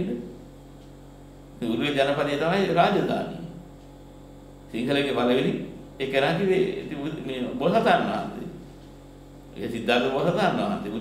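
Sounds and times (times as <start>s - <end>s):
electrical mains hum: 0.0s - 11.0s
man speaking: 4.7s - 8.6s, 9.6s - 11.0s.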